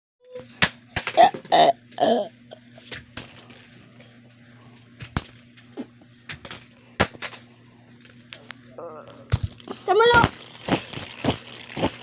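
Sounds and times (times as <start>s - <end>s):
faint steady hum: 0.2s - 12.0s.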